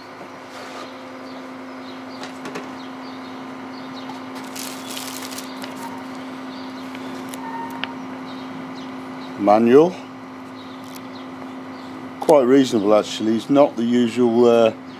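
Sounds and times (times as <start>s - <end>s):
steady low hum: 0.0s - 14.9s
plastic bags crinkling: 4.3s - 6.2s.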